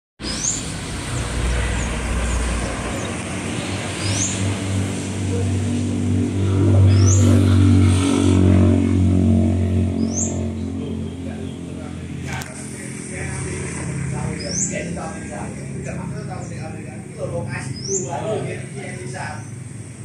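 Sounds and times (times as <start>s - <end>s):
bird chirping: 0.2s - 5.4s, 6.7s - 7.6s, 9.9s - 12.0s, 14.2s - 19.9s.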